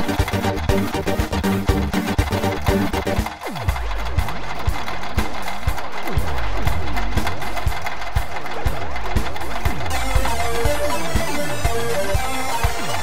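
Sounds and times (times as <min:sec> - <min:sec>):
gliding synthesizer tones: 0:00.0 - 0:13.0
held low bass: 0:00.0 - 0:13.0
percussive hits: 0:00.0 - 0:13.0.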